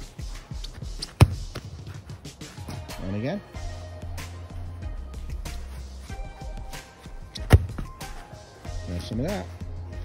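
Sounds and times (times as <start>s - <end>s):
music: 0.0s - 10.0s
football striking a cone: 1.0s - 1.7s, 7.4s - 8.1s.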